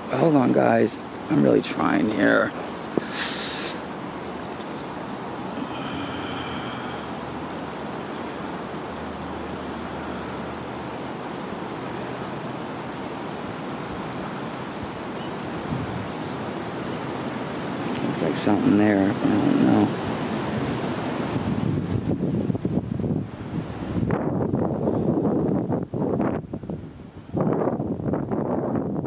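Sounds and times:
rushing wind: 0.0 - 29.0.

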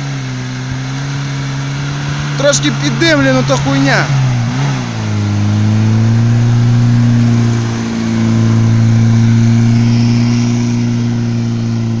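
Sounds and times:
wheels spinning on wet grass: 0.0 - 4.1, 5.3 - 12.0
car engine at high revs: 0.0 - 12.0.

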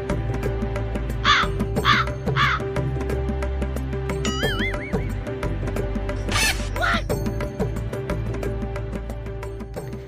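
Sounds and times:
background music: 0.0 - 10.0
crow cawing: 1.2 - 2.7.

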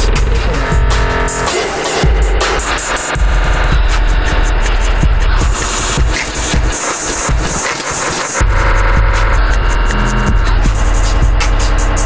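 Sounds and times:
heavy low drone: 0.0 - 7.2, 8.4 - 12.0
stuttering static noise: 0.0 - 12.0.

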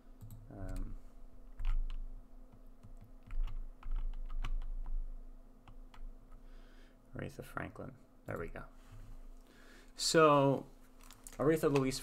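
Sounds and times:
low steady hum: 0.0 - 12.0
computer keyboard typing: 0.2 - 0.9, 1.6 - 5.0, 5.6 - 6.4.

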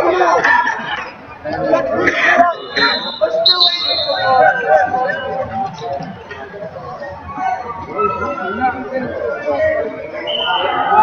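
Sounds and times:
voices talking and calling out: 0.0 - 11.0.

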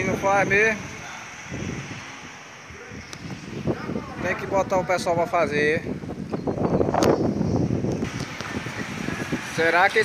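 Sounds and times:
street noise: 0.0 - 10.0
wind buffeting microphone: 0.0 - 10.0.

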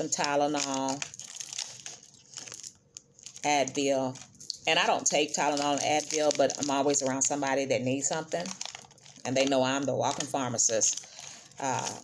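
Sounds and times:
hand rummaging through pouch: 0.5 - 3.5.

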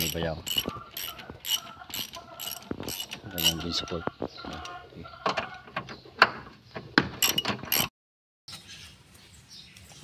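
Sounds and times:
ratchet and tools clicking on bolts: 0.0 - 3.9, 7.2 - 7.9.

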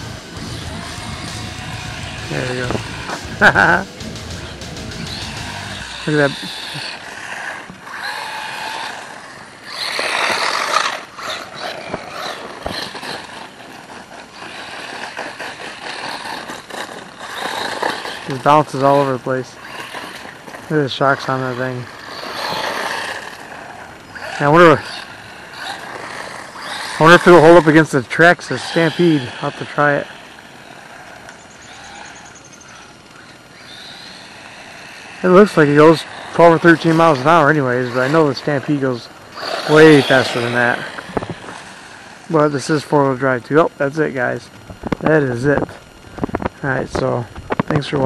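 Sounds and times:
outdoor background hiss: 0.0 - 48.0
rc truck motor whine: 0.0 - 48.0
tyres on wet gravel: 4.5 - 48.0.

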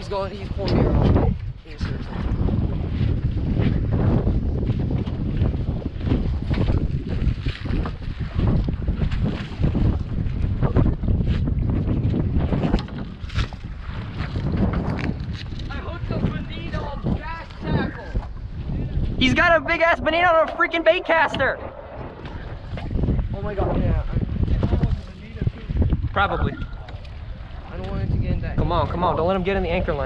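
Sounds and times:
water sloshing along hull: 0.0 - 30.0
wind buffeting microphone: 0.0 - 30.0.

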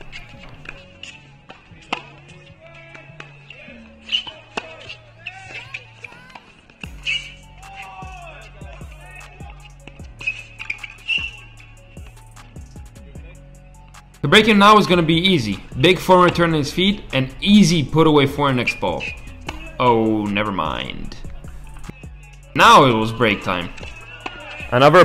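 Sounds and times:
tennis ball strikes off rackets: 0.0 - 3.3, 4.0 - 7.9
shoes squeaking on court: 0.0 - 13.3, 14.8 - 22.3, 23.1 - 24.8
background music: 0.0 - 25.0.

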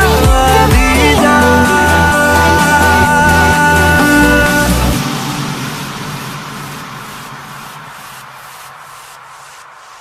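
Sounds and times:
song music: 0.0 - 8.0
faint low drone: 0.0 - 8.8
hissing wind-like noise: 0.1 - 10.0.

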